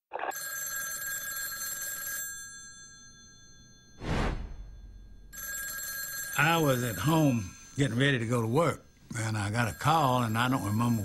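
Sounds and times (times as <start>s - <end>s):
telephone bell ringing: 0.2s - 4.0s, 4.6s - 8.0s, 9.1s - 11.0s
short whoosh: 4.0s - 4.9s.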